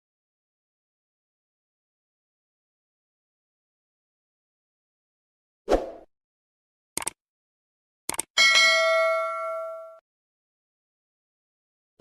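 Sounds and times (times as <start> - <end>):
short clicks: 7.0 - 7.2, 8.1 - 8.3
bell-like ding: 8.4 - 10.0.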